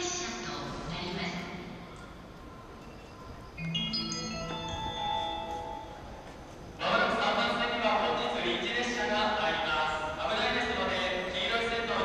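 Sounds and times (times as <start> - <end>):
electronic chime tones: 3.0 - 6.2
announcement over speakers: 3.4 - 12.0.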